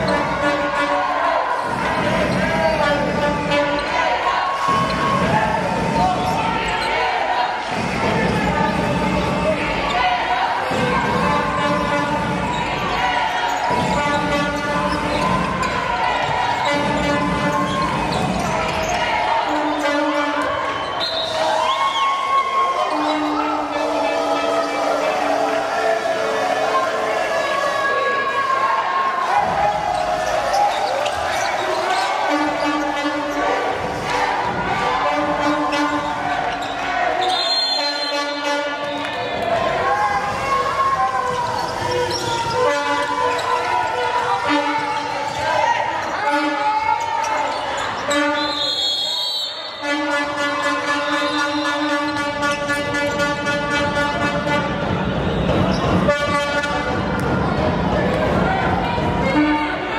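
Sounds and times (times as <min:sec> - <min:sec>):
spectators' voices: 0:00.0 - 0:59.9
long steady horn tones: 0:49.8 - 0:55.2
ball bouncing on hardwood court: 0:56.9 - 0:58.3.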